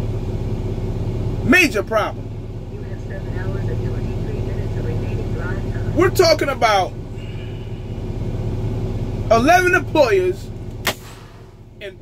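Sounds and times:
diesel truck engine humming: 0.0s - 12.0s.

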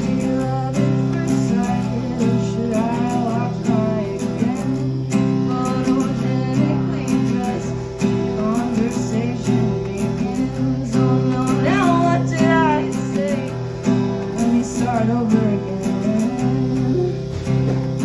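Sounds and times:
acoustic guitar strumming: 0.0s - 18.0s
woman singing: 0.0s - 18.0s
electric bass guitar: 10.6s - 18.0s.

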